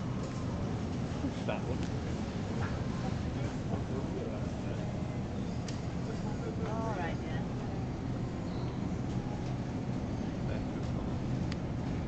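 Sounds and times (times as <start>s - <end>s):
supermarket background rumble: 0.0s - 12.0s.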